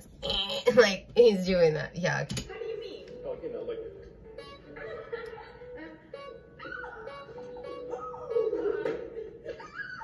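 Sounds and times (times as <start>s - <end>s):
background music with held note: 3.1s - 9.4s.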